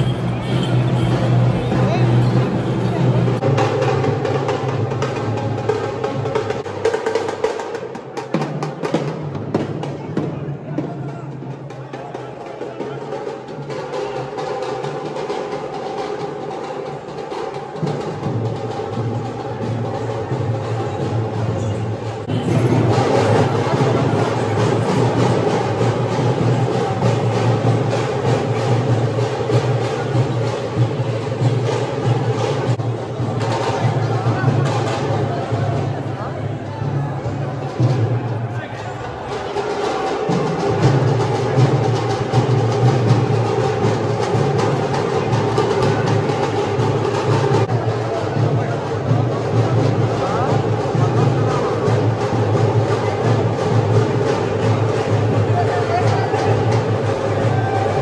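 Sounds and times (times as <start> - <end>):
crowd voices: 0.0 - 58.0
rapid dense drumming: 0.0 - 58.0.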